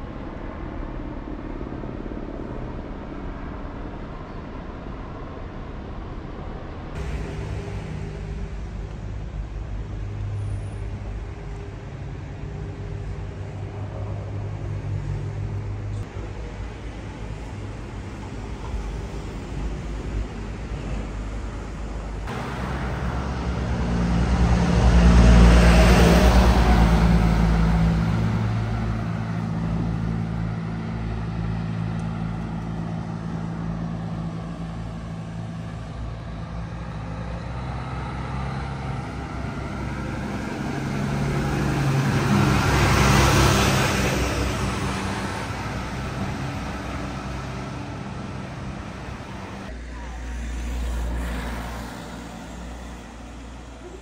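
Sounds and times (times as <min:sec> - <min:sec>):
vehicles passing on street: 0:00.0 - 0:54.0
truck passing: 0:06.9 - 0:54.0.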